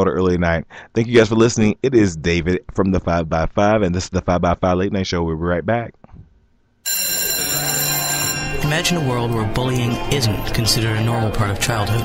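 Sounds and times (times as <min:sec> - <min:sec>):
bell ringing loudly: 0:06.9 - 0:11.0.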